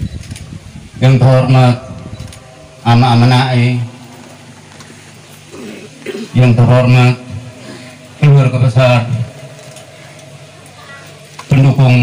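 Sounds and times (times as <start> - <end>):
faint crowd background noise: 0.0 - 12.0
man's voice over loudspeaker: 1.0 - 4.1, 6.2 - 9.6, 11.5 - 12.0.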